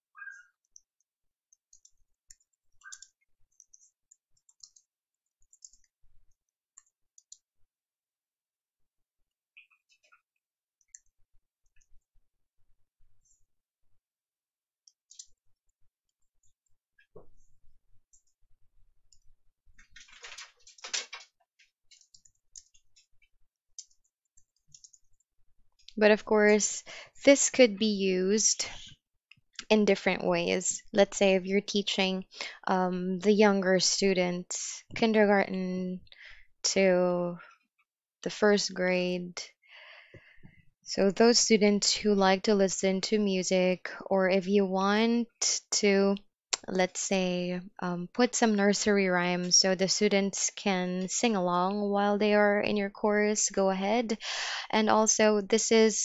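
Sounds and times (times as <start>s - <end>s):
typing on computer keyboard: 1.7s - 5.9s, 19.8s - 21.3s, 21.9s - 23.1s, 23.8s - 25.2s.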